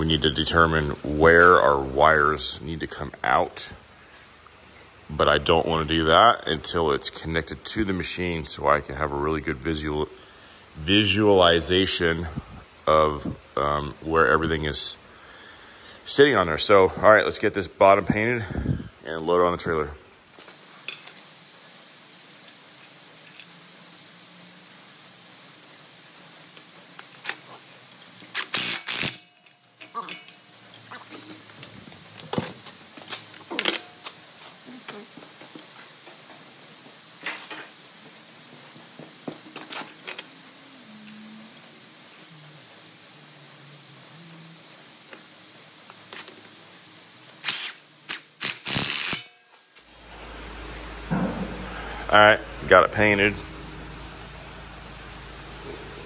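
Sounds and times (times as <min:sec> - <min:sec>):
clinks of hand tools on metal: 0:27.2 - 0:31.4, 0:41.1 - 0:42.6.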